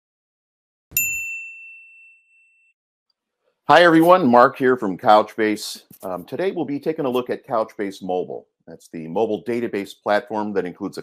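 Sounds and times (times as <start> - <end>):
bright ding: 0.9 - 2.8.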